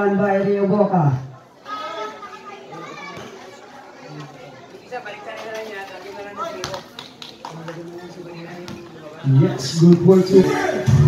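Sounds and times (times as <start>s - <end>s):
spectators' voices: 0.0s - 11.0s
children chattering: 1.3s - 10.9s.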